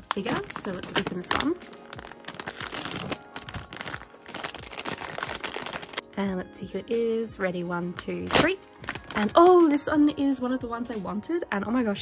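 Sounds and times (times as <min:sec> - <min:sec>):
plastic bag tearing and crinkling: 0:00.0 - 0:06.0, 0:08.3 - 0:09.4.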